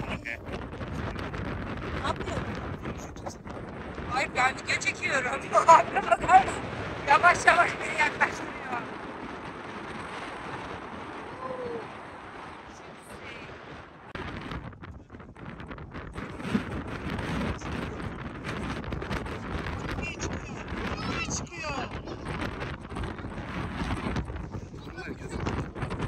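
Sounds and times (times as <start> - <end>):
wind blowing across microphone: 0.0 - 26.0.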